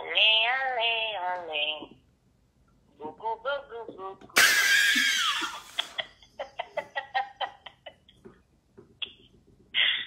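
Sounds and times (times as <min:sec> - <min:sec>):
man's stifled laughter: 0:04.9 - 0:08.1.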